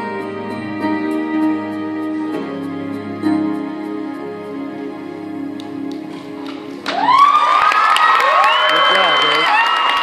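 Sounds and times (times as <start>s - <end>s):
audience cheering and whooping: 6.8s - 10.0s.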